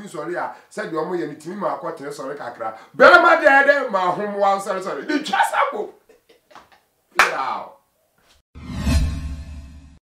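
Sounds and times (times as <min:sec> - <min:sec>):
whoosh sound effect: 0:08.6 - 0:10.0.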